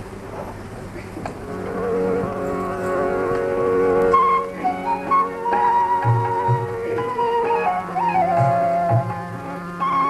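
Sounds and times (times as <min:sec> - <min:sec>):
harmonium drone: 0:01.4 - 0:10.0.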